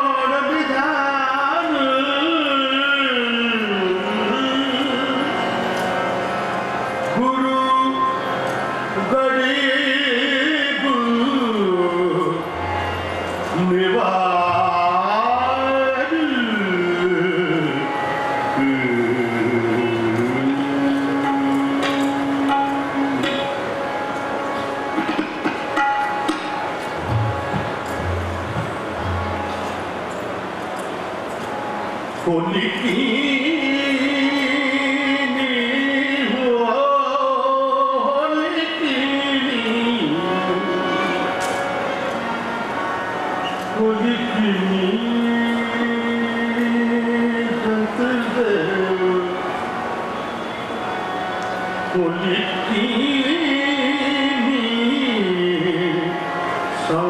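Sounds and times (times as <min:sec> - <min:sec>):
man singing: 0:00.0 - 0:05.7, 0:07.0 - 0:12.8, 0:13.5 - 0:23.8, 0:32.2 - 0:41.4, 0:43.6 - 0:49.6, 0:51.8 - 0:57.0
harmonium drone: 0:00.0 - 0:57.0
light percussive taps: 0:25.0 - 0:28.8.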